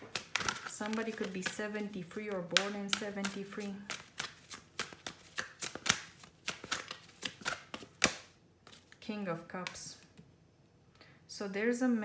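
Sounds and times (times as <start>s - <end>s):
cards clicking and slapping: 0.0s - 9.0s.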